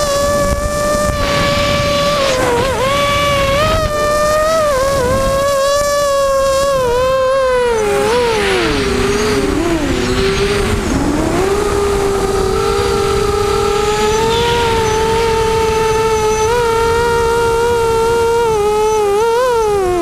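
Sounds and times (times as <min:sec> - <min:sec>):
drone motors and propellers whining: 0:00.0 - 0:20.0
wind rumble on microphone: 0:00.0 - 0:20.0.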